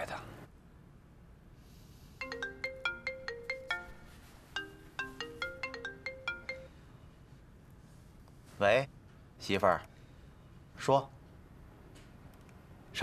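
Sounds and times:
mobile phone ringtone: 2.2 - 6.9.

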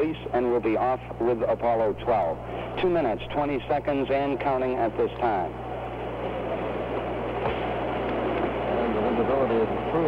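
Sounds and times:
broadcast hiss: 0.0 - 10.0
faint voices: 8.1 - 10.0.

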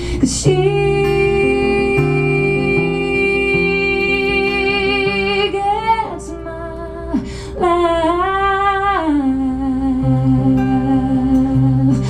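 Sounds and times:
acoustic guitar: 0.0 - 12.0
woman singing wordless note: 0.2 - 12.0.

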